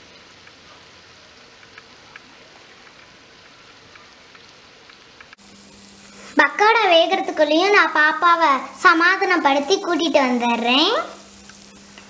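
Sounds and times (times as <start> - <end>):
deep-frying sizzle with pops: 0.0 - 12.0.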